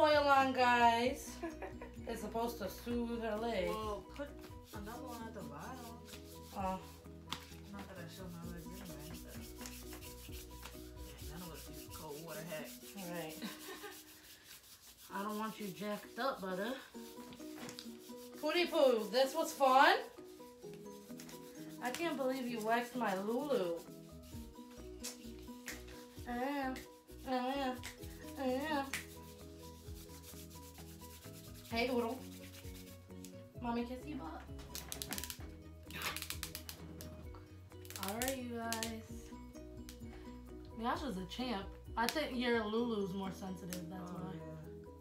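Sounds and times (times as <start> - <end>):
wax strip rubbed between palms: 3.7 - 33.4, 34.7 - 37.1, 37.8 - 38.9.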